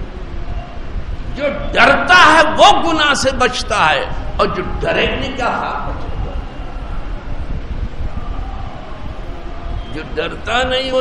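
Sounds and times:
faint hum: 0.0 - 11.0
low rumbling background noise: 0.0 - 11.0.

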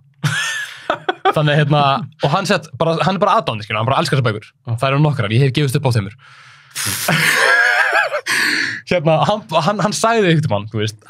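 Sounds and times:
man talking: 1.2 - 6.2, 8.8 - 11.0
man gasping loudly: 8.2 - 8.9.

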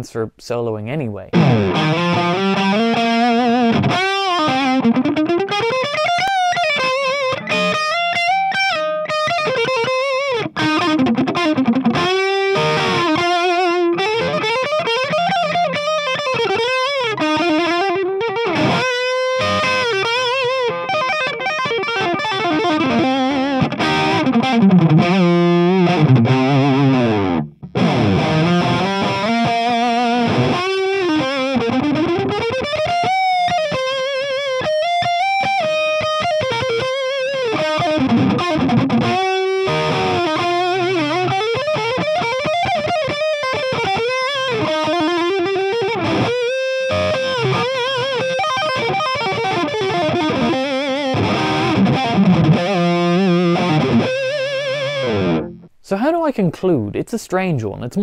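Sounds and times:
distorted electric guitar solo: 1.3 - 55.7.

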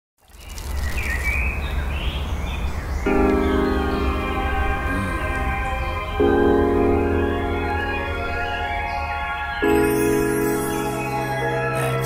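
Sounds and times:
birds chirping: 0.2 - 12.0
background music chord: 3.1 - 12.0.

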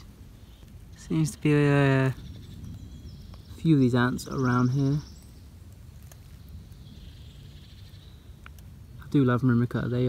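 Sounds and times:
faint ticks: 8.4 - 8.7.

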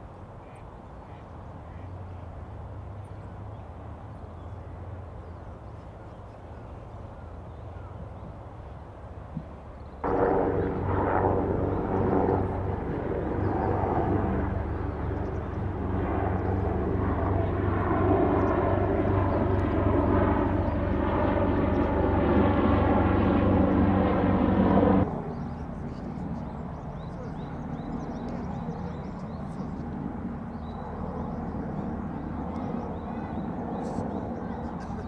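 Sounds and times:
engine drone with pitched hum: 10.0 - 16.7.

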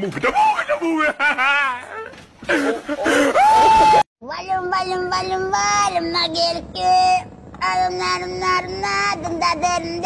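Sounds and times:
high child-like singing voice: 4.2 - 10.0.

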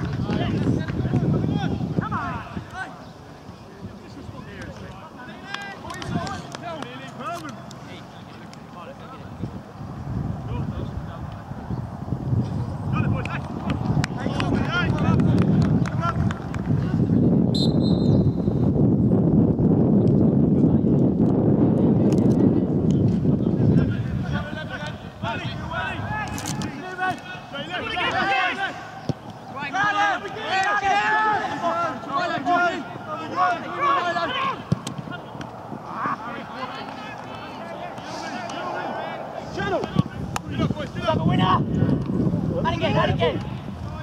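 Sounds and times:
referee's whistle blast: 17.5 - 18.5
players shouting: 23.9 - 42.0.

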